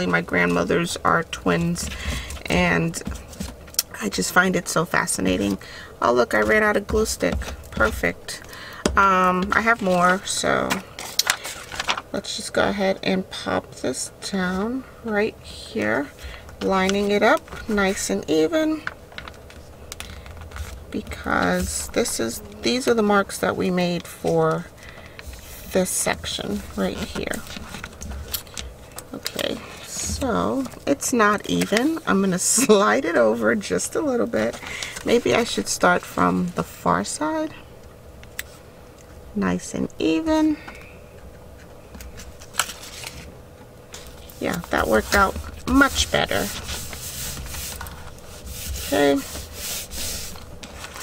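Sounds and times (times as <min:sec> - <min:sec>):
steady low hum: 0:00.0 - 0:51.0
paper rustling: 0:09.5 - 0:12.1, 0:23.9 - 0:32.8, 0:42.0 - 0:43.3, 0:43.9 - 0:51.0.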